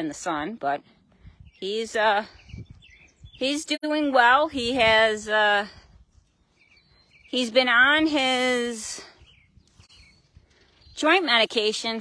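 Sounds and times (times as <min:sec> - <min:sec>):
faint outdoor ambience: 0:00.0 - 0:12.0
soft bird chirps: 0:00.8 - 0:03.8, 0:05.9 - 0:08.1, 0:09.0 - 0:12.0.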